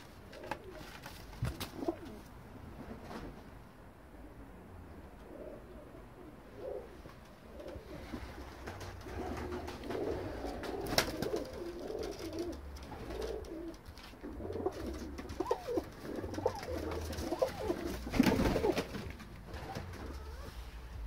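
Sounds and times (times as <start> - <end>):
pigeons cooing: 0.0 - 2.4, 4.1 - 21.0
wingbeats flurry: 7.6 - 20.6.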